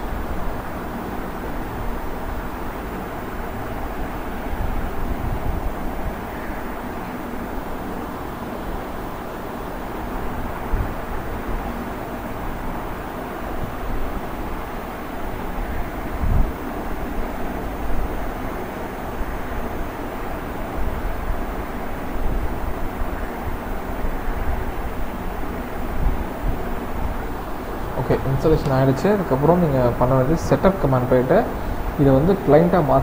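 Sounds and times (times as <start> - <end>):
steady rushing noise: 0.0 - 33.0.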